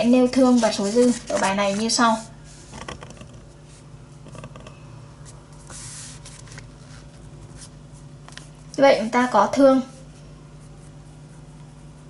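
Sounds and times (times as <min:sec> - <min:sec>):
woman speaking: 0:00.0 - 0:02.3, 0:08.7 - 0:10.1
paper page rustling: 0:00.4 - 0:03.2, 0:05.6 - 0:08.5.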